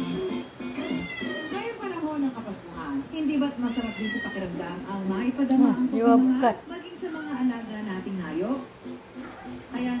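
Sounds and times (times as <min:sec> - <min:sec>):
kitten meowing: 0:00.8 - 0:01.6, 0:03.6 - 0:04.5.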